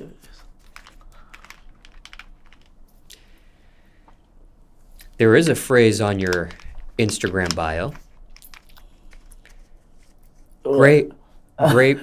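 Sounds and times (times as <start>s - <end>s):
plastic bottle cap twisting: 6.1s - 10.6s.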